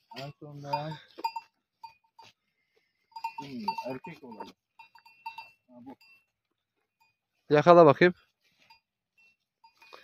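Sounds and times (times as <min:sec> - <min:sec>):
livestock bell clinking: 0:00.0 - 0:10.0.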